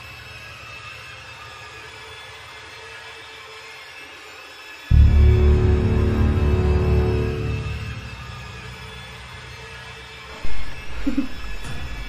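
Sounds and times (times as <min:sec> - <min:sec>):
loud low boom: 0:04.9 - 0:12.0
low dark rumbling drone: 0:04.9 - 0:12.0.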